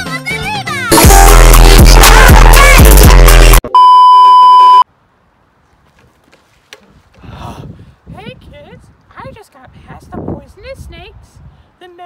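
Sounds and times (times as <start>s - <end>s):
loud test tone beep: 3.6s - 4.8s.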